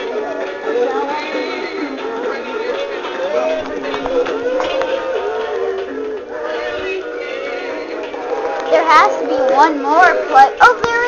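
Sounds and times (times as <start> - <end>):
toy voice singing over music: 0.0 - 11.0.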